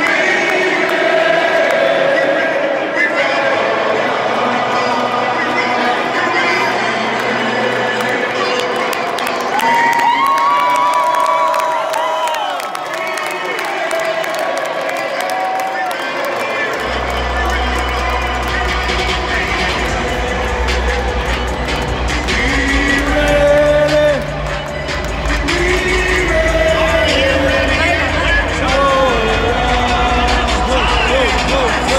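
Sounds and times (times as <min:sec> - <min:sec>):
crowd singing or chanting: 0:00.0 - 0:09.9, 0:13.0 - 0:31.9
music: 0:00.0 - 0:11.8, 0:15.5 - 0:31.9
stadium crowd cheering: 0:00.0 - 0:31.9.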